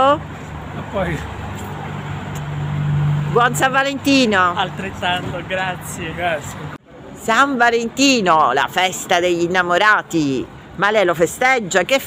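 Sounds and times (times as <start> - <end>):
vehicle engine humming: 0.0 - 11.4.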